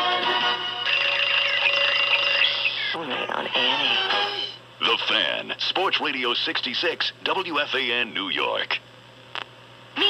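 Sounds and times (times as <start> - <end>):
radio jingle music with voices: 0.0 - 8.8
man speaking: 4.8 - 8.8.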